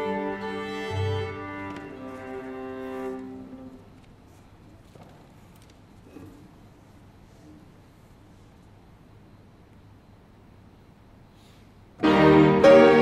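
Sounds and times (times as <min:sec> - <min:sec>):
string quartet chords: 0:00.0 - 0:03.9, 0:12.0 - 0:13.0.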